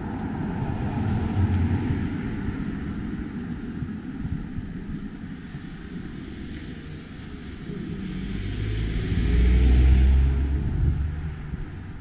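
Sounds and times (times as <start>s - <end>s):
vehicle passing by: 7.6s - 12.0s.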